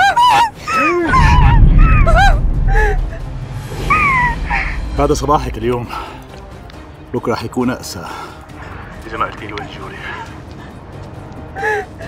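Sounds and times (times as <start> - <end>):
explosion with low rumble: 1.1 - 5.5.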